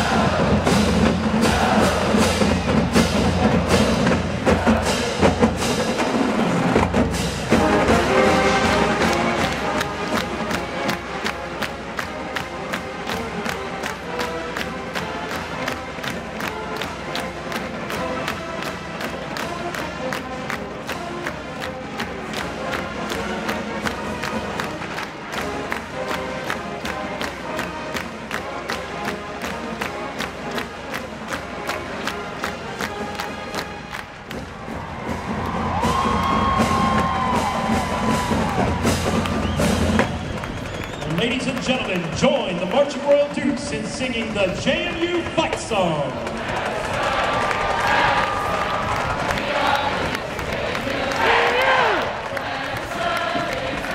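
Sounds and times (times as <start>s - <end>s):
crowd cheering: 0.0s - 20.2s, 31.7s - 53.9s
brass chords: 0.0s - 34.2s
marching band drum beat: 0.0s - 53.9s.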